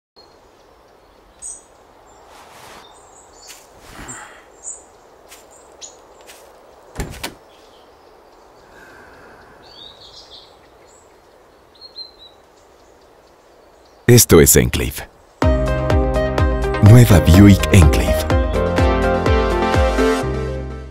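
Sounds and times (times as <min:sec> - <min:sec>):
faint bird chirps: 0:00.2 - 0:15.4.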